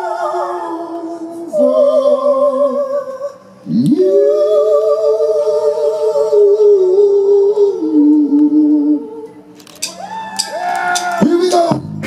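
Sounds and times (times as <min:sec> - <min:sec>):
singers in two-part harmony: 0:00.0 - 0:12.0.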